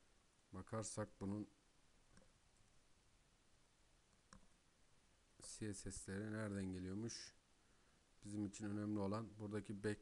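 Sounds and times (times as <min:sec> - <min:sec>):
computer mouse click: 0:04.1 - 0:04.5.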